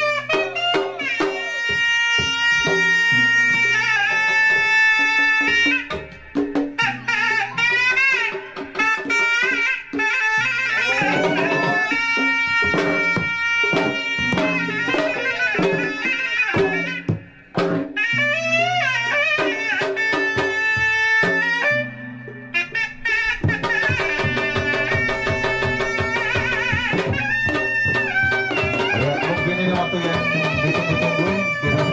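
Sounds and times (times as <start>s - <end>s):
hand-drum beats: 0.0s - 31.9s
reed wind instrument melody: 0.0s - 31.9s.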